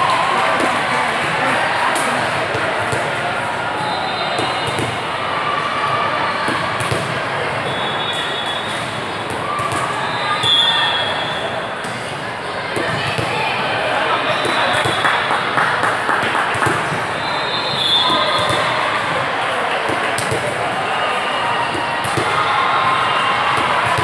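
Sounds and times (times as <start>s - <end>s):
hubbub of voices: 0.0s - 24.0s
volleyball hit thuds: 16.1s - 17.1s, 17.8s - 18.8s, 19.8s - 20.7s, 21.7s - 22.4s.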